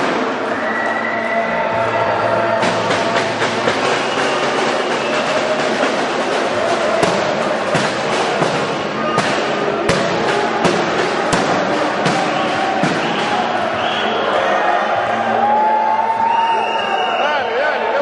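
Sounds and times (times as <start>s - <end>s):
music: 0.0s - 18.0s
reverberant hall crowd noise: 0.0s - 18.0s
sharp bangs: 2.6s - 14.1s.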